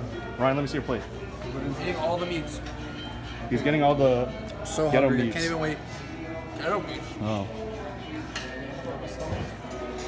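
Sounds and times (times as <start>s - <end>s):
indistinct chatter: 0.0s - 10.0s
music playing: 0.0s - 10.0s.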